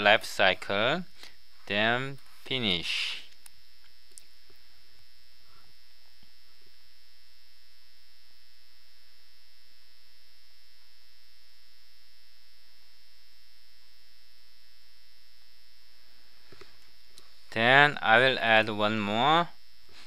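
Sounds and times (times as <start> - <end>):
electrical mains hum: 0.0 - 20.0
faint high whine: 0.0 - 20.0.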